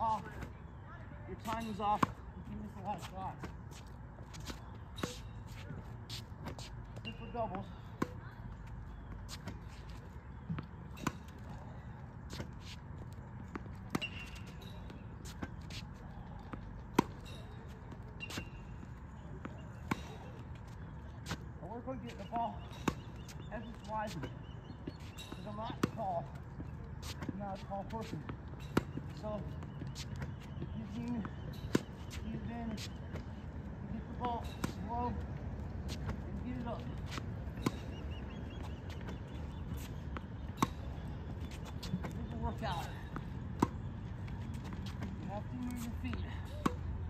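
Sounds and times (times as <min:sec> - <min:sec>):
tennis ball bouncing on court: 0:01.4 - 0:03.6, 0:13.4 - 0:21.4, 0:22.1 - 0:33.3, 0:35.8 - 0:46.9.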